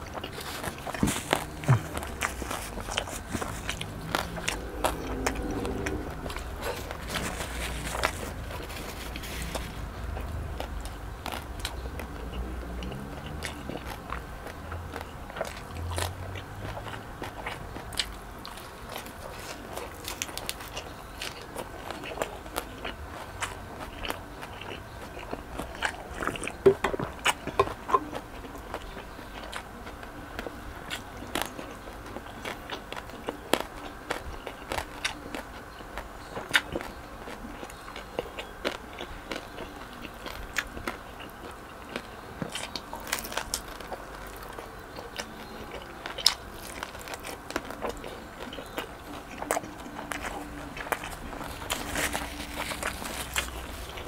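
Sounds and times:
chewing and crunching crispy pork: 0:00.0 - 0:54.0.

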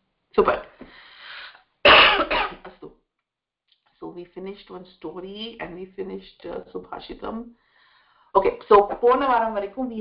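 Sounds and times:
person coughing: 0:01.9 - 0:02.8.

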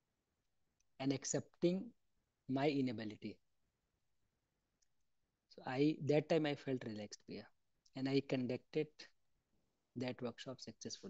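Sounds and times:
man speaking: 0:01.0 - 0:01.9, 0:02.5 - 0:03.4, 0:05.6 - 0:09.1, 0:10.0 - 0:11.0.

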